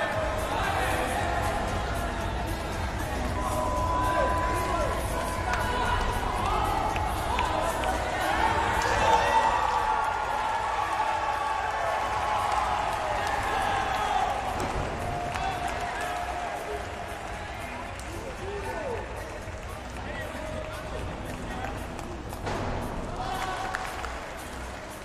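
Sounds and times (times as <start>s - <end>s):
crowd voices in large hall: 0.0s - 25.0s.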